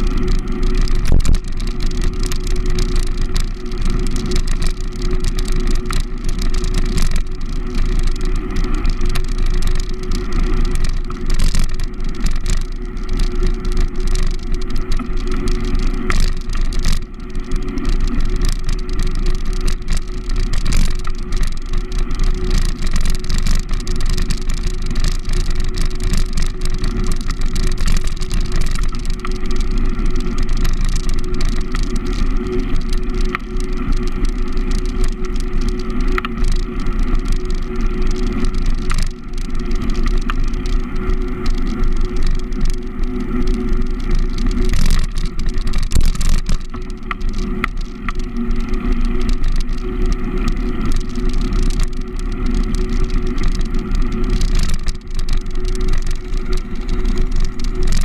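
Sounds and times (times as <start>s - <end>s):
road rumble: 0.0s - 58.0s
small knocks and rattles: 0.0s - 58.0s
steady low hum: 0.0s - 58.0s.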